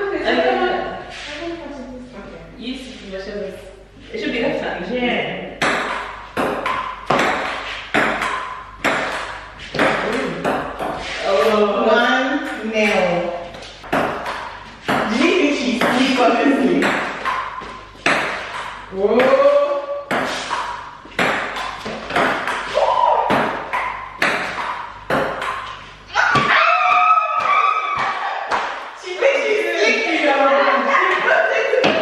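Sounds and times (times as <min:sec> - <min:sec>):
women talking and exclaiming: 0:11.2 - 0:13.4, 0:29.0 - 0:32.0.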